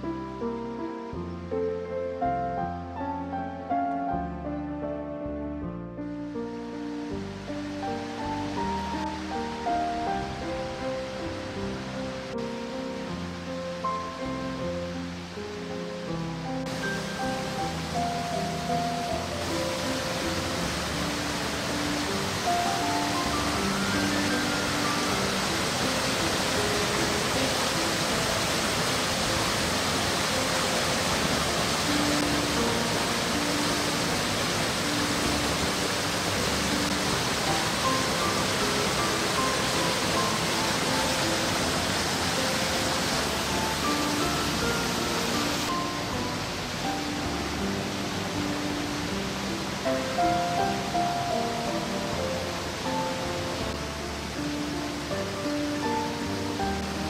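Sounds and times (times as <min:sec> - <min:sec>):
slow melodic background music: 0:00.0 - 0:57.0
waterfall rushing: 0:06.3 - 0:57.0.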